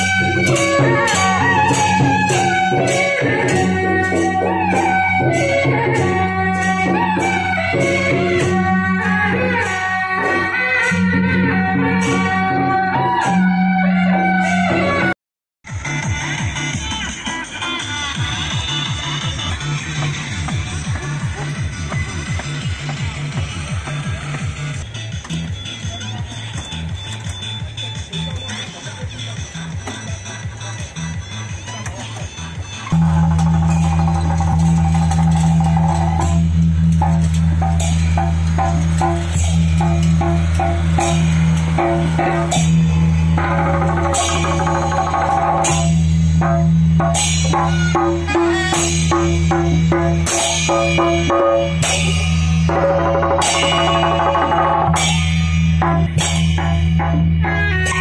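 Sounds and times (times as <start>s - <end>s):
cymbal clashes: 33.0s - 58.0s.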